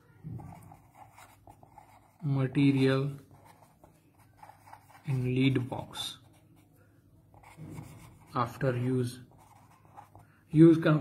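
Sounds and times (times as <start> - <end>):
pen scratching on paper: 0.3 - 6.4, 7.3 - 10.2.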